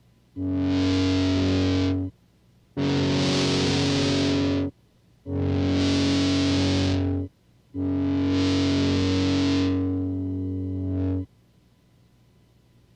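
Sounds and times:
distorted electric guitar chords: 0.4 - 2.1, 2.8 - 4.7, 5.3 - 11.3.

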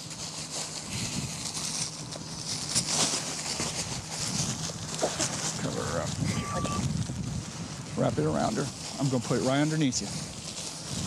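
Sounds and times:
steady low hum: 0.0 - 11.0
faint voices: 5.5 - 6.9.

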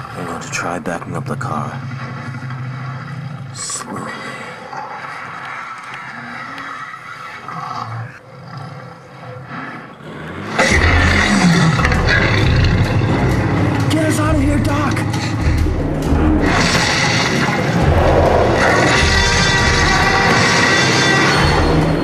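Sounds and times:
dinosaur roars and growls: 0.0 - 13.9, 15.1 - 22.0.

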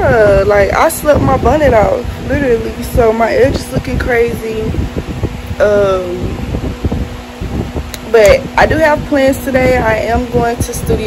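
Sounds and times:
faint hum: 0.0 - 11.0
low rumble: 0.0 - 11.0.

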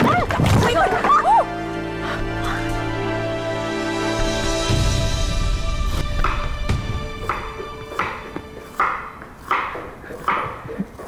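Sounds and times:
woman's cry of pain: 0.0 - 1.5
dramatic music with held chords: 0.5 - 9.7.

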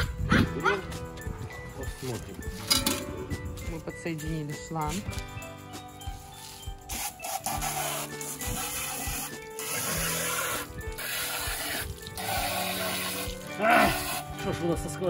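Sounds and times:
hose spray splashing on plastic: 6.1 - 14.5.

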